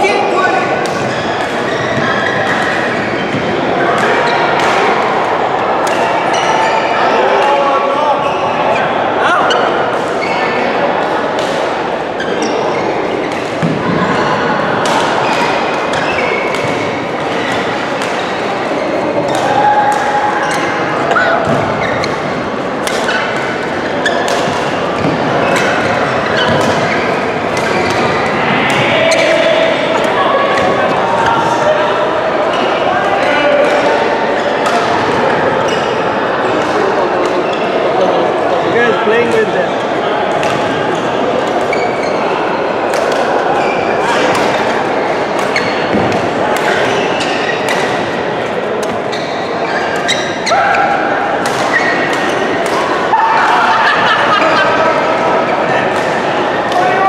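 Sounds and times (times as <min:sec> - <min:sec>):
chatter of many voices: 0:00.0 - 0:57.0
rackets hitting shuttlecocks: 0:19.2 - 0:31.0, 0:42.8 - 0:49.1, 0:51.0 - 0:53.6, 0:55.5 - 0:57.0.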